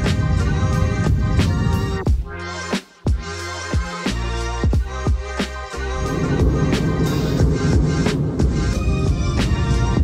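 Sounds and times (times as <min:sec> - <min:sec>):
electronic music with steady beat: 0:00.0 - 0:10.0.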